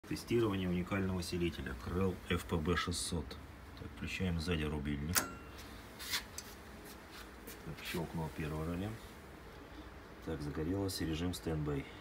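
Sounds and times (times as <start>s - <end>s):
amplifier relay clicking: 5.0s - 5.5s.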